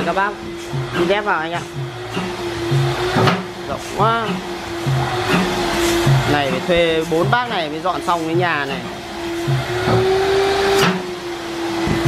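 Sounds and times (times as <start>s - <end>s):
vacuum cleaner motor hum: 1.8s - 12.0s.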